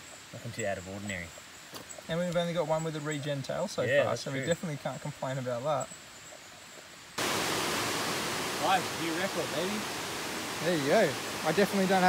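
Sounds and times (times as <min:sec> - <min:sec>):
stream water rushing: 0:06.9 - 0:12.0.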